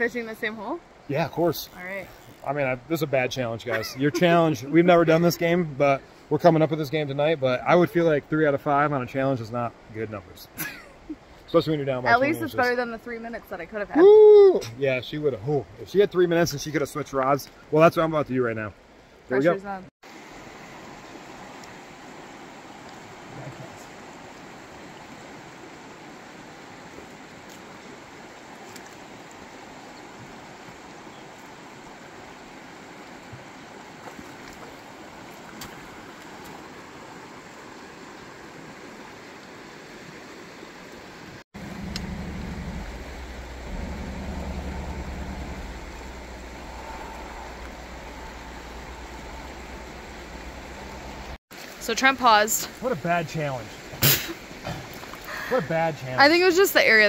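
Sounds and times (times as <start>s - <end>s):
river water rushing: 18.9s - 57.0s
low rumble: 41.6s - 51.4s.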